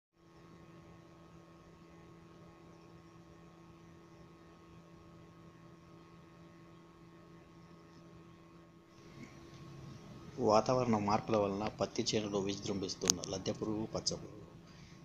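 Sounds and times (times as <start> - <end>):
faint steady hum: 0.2 - 15.0
low hiss: 8.9 - 15.0.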